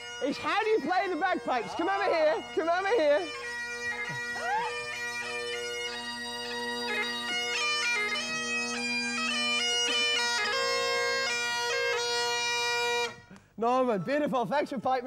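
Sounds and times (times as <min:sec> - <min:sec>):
bagpipe chanter melody: 0:00.0 - 0:13.3
bagpipe drones: 0:00.0 - 0:13.4.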